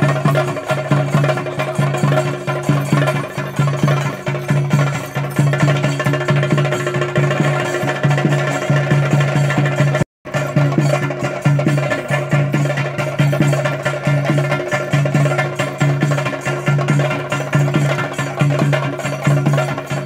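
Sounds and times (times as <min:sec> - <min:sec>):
temple drums playing fast rhythm: 0:00.0 - 0:20.0.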